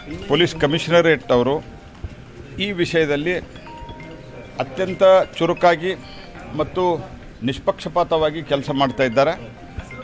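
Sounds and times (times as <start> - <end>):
man speaking: 2.5 - 3.5, 4.4 - 10.0.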